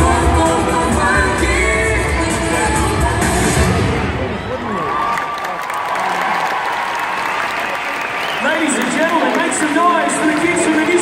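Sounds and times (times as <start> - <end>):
crowd applauding: 4.5 - 11.0.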